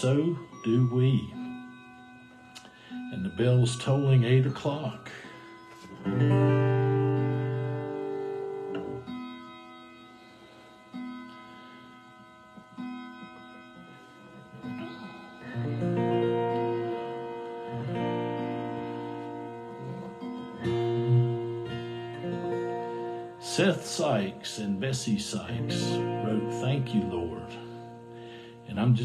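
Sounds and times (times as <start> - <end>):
acoustic guitar chords: 0.0 - 29.0.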